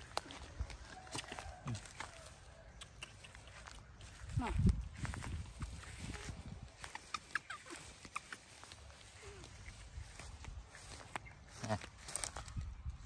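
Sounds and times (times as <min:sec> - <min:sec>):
rustling in grass: 0:00.0 - 0:13.0
baby monkey squeaking: 0:06.2 - 0:08.6.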